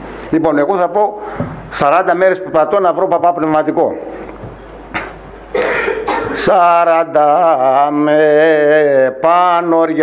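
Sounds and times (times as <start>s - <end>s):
man coughing: 5.0s - 6.5s.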